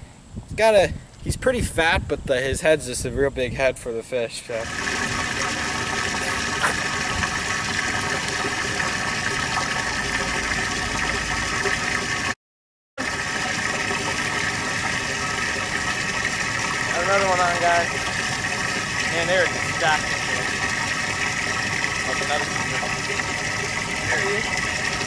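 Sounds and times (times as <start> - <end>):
pump humming: 4.6 - 12.4, 13.0 - 25.0
water splashing: 4.6 - 12.4.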